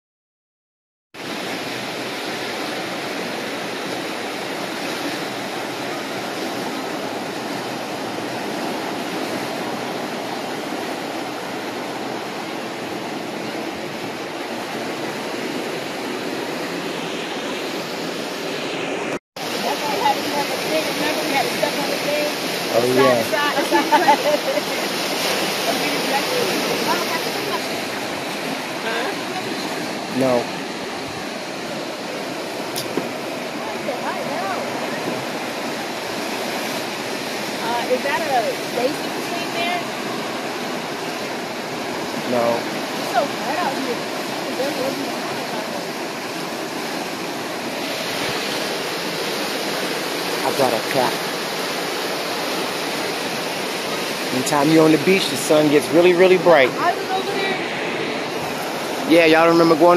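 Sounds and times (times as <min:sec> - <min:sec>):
surf rushing on a beach: 0:01.2 - 0:59.9.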